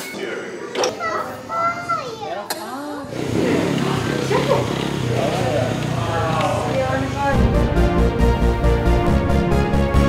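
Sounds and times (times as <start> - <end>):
toddler babbling: 0.9 - 2.5.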